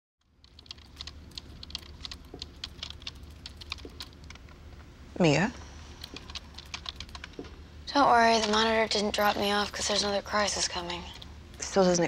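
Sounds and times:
computer keyboard typing: 0.2s - 4.5s, 5.9s - 11.9s
low steady hum: 0.2s - 12.0s.

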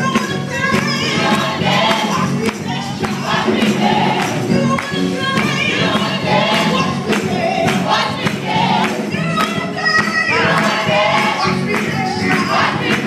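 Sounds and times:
instrumental accompaniment: 0.0s - 13.0s
steady percussive beat: 0.0s - 13.0s
gospel choir singing: 0.4s - 13.0s.

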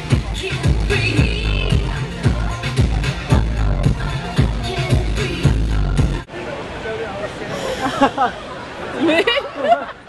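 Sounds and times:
chatter of people around: 0.0s - 10.0s
voices talking: 0.0s - 10.0s.

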